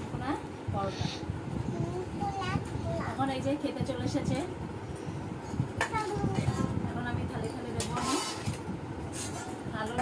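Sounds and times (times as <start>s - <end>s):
voices: 0.1s - 4.7s.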